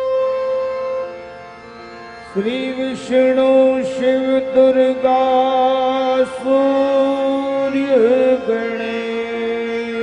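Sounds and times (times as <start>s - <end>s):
instrumental accompaniment: 0.0s - 10.0s
man singing devotional song: 2.1s - 10.0s.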